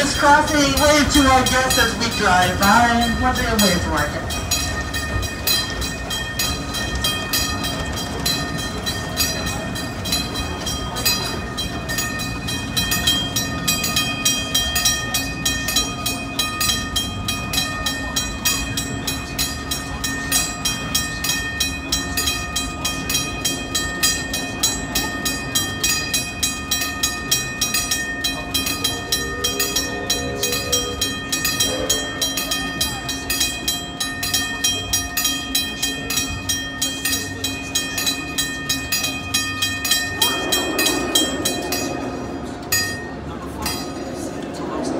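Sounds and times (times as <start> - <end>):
crossing bell ringing: 0.0 - 44.9.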